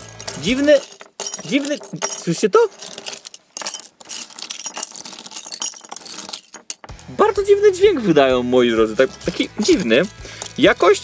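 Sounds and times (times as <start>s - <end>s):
plastic bricks rattling: 0.0s - 11.0s.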